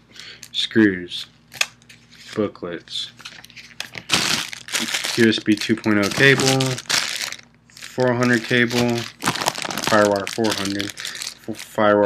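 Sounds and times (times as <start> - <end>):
plastic bag crinkling: 3.3 - 12.0.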